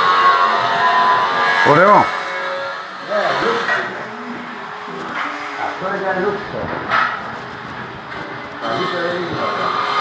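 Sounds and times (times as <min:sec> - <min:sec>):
steady background noise: 0:00.0 - 0:10.0
people's voices: 0:08.2 - 0:09.8.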